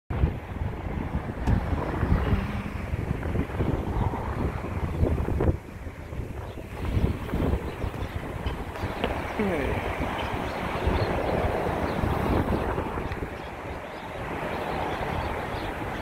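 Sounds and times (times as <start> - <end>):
wind buffeting microphone: 0.1 - 16.0
low rumble: 0.4 - 5.9.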